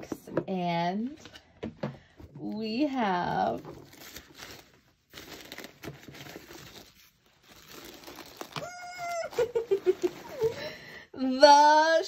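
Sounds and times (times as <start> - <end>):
tissue paper rustling: 3.0 - 11.0.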